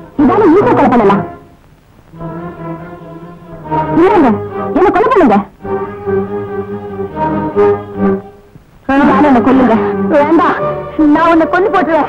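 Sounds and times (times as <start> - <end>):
orchestral film score with brass: 2.2 - 12.0.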